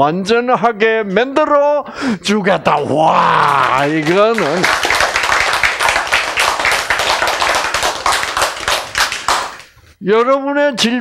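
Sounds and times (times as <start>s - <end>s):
audience clapping: 2.7s - 9.8s.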